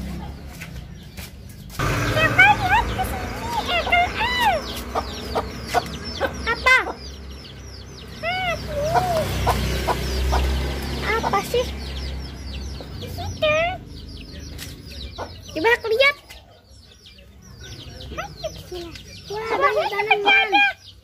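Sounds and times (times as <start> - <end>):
chickens clucking: 0.0 - 21.0
small birds chirping: 0.0 - 21.0.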